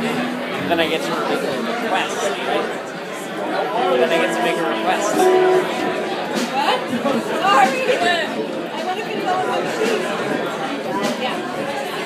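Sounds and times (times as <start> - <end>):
voices chattering: 0.9 - 12.0.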